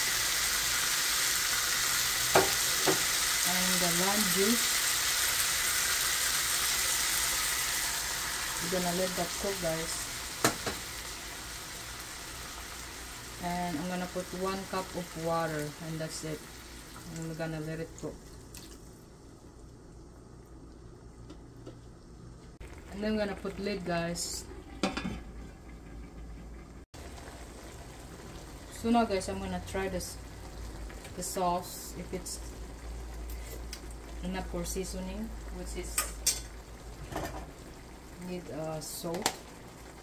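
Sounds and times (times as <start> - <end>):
stew simmering in a pan: 0.0 - 40.0.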